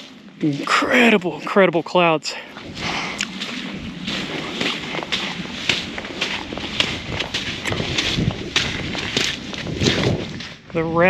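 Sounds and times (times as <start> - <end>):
footsteps on wet sand and rocks: 0.0 - 11.0.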